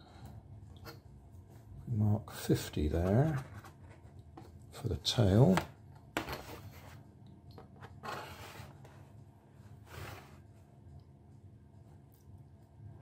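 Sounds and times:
low steady room hum: 0:00.0 - 0:13.0.

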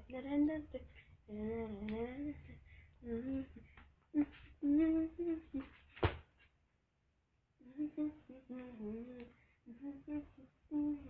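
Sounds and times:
woman humming: 0:00.0 - 0:05.8, 0:07.6 - 0:11.0.

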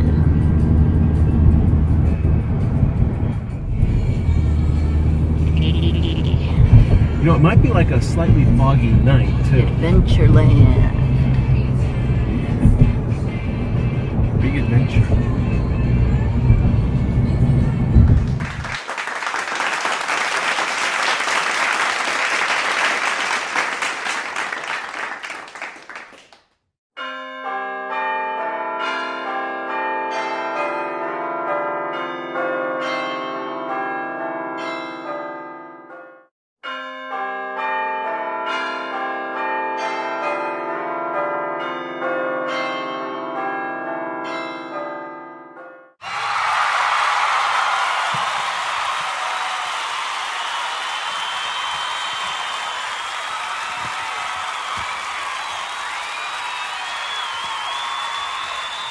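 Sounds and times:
peal of bells ringing: 0:27.0 - 0:35.8, 0:36.6 - 0:45.8.

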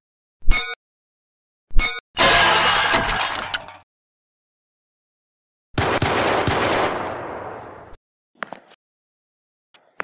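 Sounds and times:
crash of shattering glass and metal: 0:02.2 - 0:03.8.

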